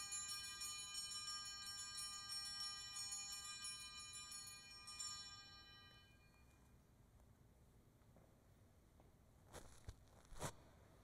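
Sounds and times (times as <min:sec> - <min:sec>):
small hand bells ringing: 0:00.0 - 0:06.6.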